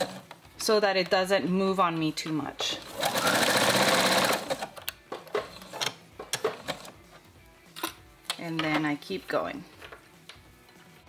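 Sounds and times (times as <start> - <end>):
sewing machine running: 0.0 - 0.2, 2.8 - 4.7.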